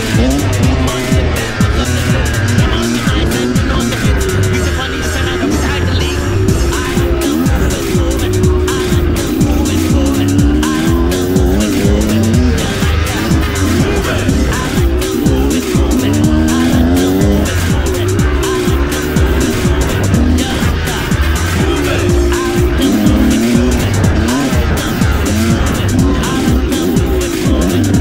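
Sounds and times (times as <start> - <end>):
dirt bike engine revving: 0.0 - 28.0.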